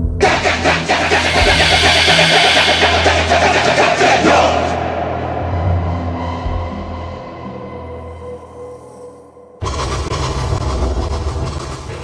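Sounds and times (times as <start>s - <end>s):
low droning horror music: 0.0s - 12.0s.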